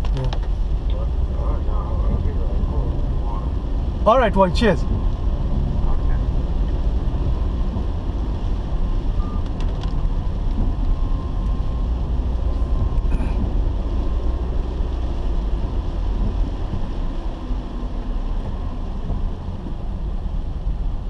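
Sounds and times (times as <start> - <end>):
car driving on wet road: 0.0 - 21.0.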